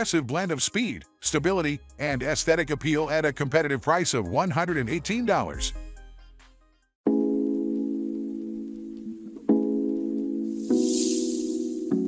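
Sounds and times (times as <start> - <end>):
soft high hissing swoosh: 10.5 - 12.0.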